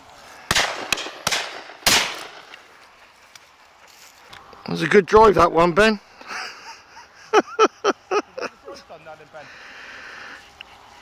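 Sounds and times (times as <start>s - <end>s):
man laughing: 6.2s - 9.1s.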